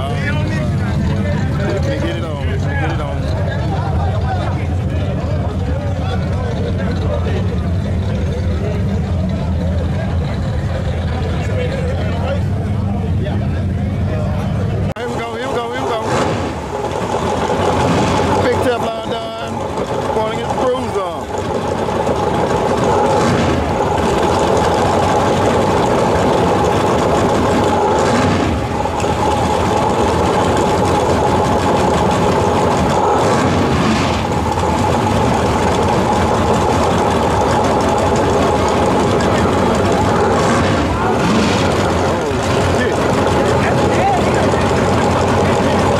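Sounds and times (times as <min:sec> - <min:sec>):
drag racing car engines: 0:00.0 - 0:45.9.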